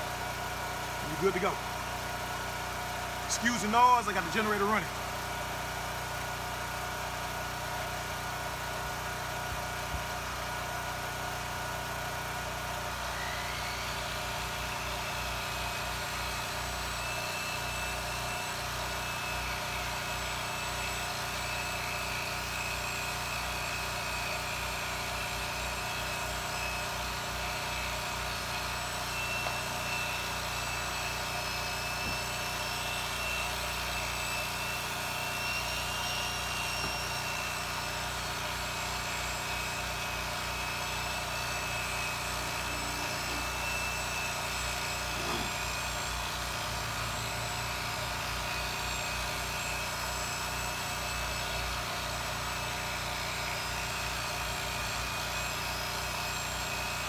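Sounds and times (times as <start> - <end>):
generator engine running: 0.0 - 17.0, 21.8 - 48.3
polisher whining: 0.0 - 57.0.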